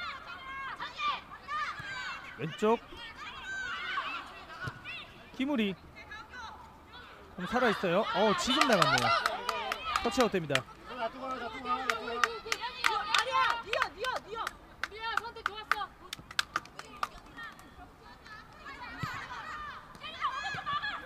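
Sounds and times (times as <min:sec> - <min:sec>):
women shouting high-pitched calls: 0:18.6 - 0:21.0.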